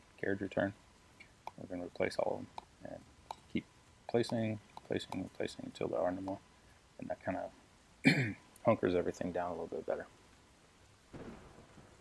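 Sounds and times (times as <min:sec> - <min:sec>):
soft rush of noise: 0:00.0 - 0:12.0.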